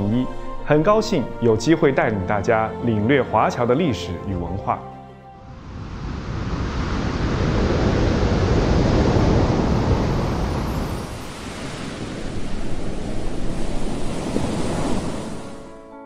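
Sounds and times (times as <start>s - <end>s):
ocean waves breaking: 5.4s - 16.0s.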